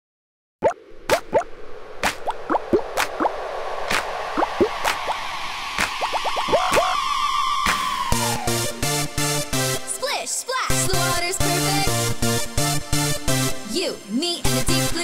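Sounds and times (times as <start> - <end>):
upward-gliding blips: 0.6 - 3.3.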